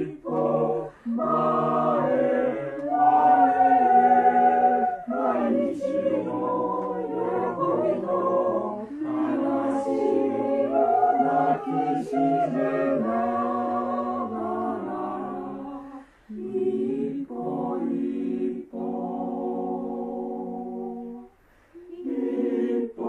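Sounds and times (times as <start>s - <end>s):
mixed-voice choir singing: 0.0s - 23.0s
short breaths: 16.0s - 16.3s, 21.3s - 21.8s.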